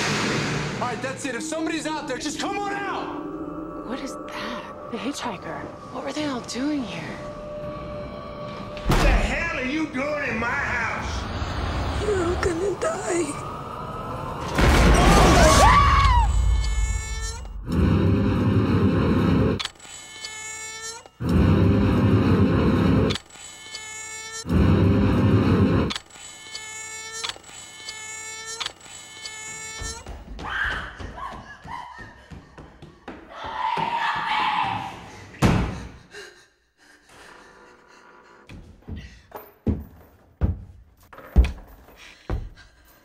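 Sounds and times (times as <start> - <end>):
eerie sounds: 0.0 - 19.9, 20.8 - 23.2, 24.4 - 26.2.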